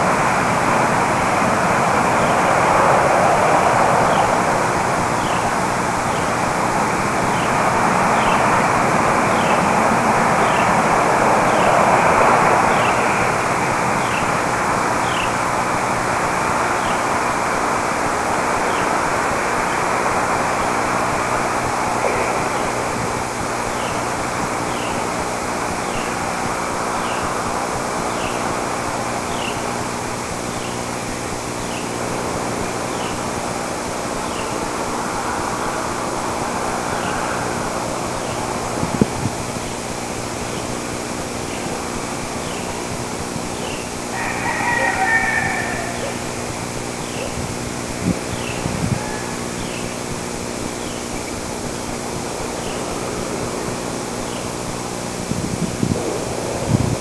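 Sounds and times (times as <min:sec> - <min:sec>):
rushing outdoor noise: 0:00.0 - 0:57.0.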